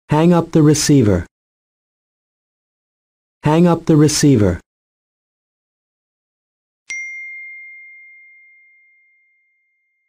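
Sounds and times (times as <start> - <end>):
bell ding: 6.9 - 10.0.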